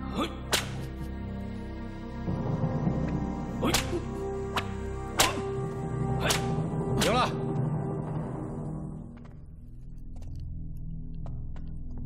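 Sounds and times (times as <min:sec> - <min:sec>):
film score music: 0:00.0 - 0:12.0
whip cracking: 0:00.5 - 0:00.9, 0:03.6 - 0:05.5, 0:06.2 - 0:07.2.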